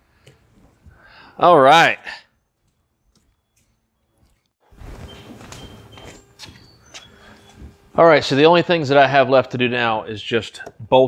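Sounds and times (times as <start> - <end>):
footsteps: 2.6 - 8.0.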